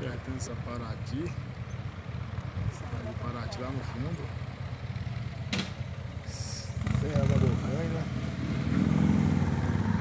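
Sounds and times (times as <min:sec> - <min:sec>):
motorcycle engine running: 0:01.4 - 0:10.0.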